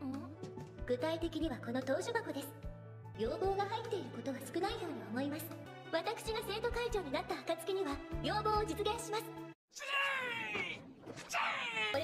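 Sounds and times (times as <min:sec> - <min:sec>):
shrill cartoon voice yelling: 0:09.7 - 0:12.0.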